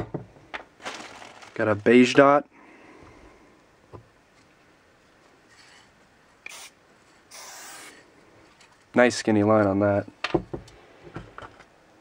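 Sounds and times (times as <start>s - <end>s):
spray can hissing: 6.4s - 8.0s.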